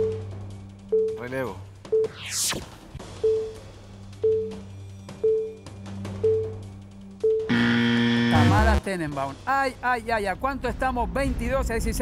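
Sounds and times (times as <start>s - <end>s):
game show countdown music: 3.1s - 6.6s, 7.2s - 9.5s
game show buzzer: 7.5s - 8.8s.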